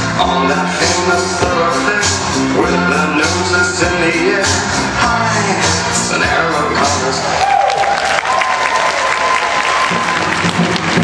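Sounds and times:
music with a beat: 0.0s - 7.3s
audience applauding: 7.3s - 11.0s.

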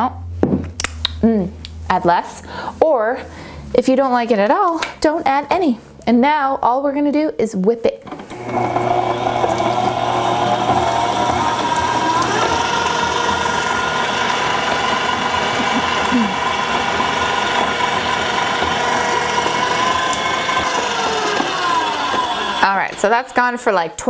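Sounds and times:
stand mixer motor whining: 8.1s - 23.9s.

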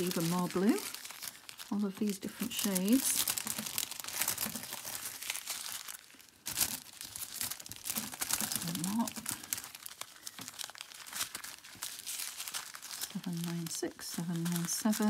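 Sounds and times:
plastic bags crinkling: 0.0s - 15.0s.

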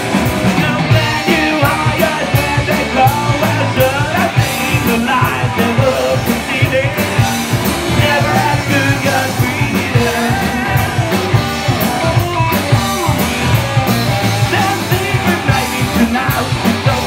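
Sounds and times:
punk rock band playing: 0.0s - 17.0s
person singing: 0.5s - 12.7s, 14.3s - 17.0s.

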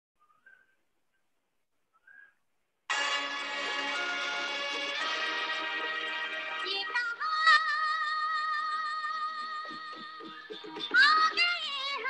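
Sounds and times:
backing music: 2.9s - 12.0s.

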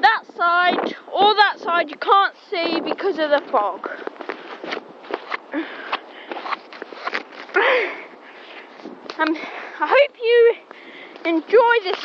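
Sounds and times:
footsteps on sand: 2.7s - 7.6s.

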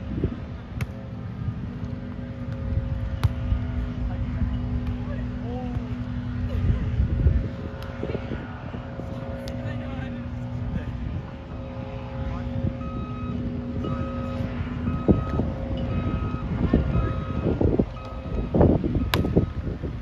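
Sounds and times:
heavy vehicle engine running: 0.0s - 20.0s
reversing alarm beeping: 12.6s - 19.8s.

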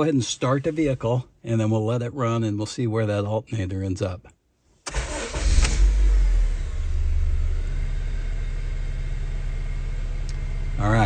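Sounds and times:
car engine starting and idling: 4.8s - 11.0s.

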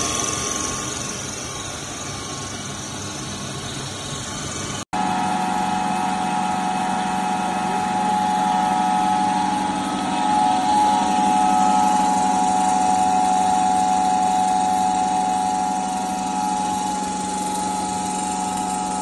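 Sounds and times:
electric motor humming and whining: 4.5s - 19.0s.

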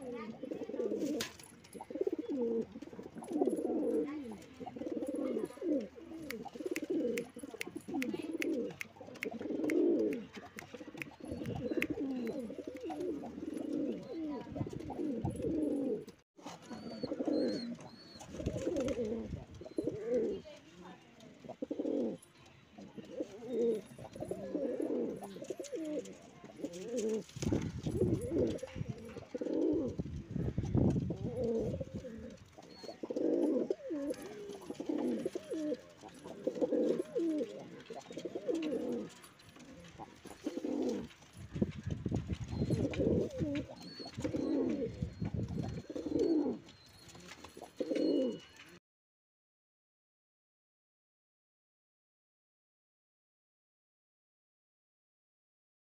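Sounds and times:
pigeons cooing: 0.0s - 20.5s, 21.2s - 22.2s, 22.8s - 48.7s.

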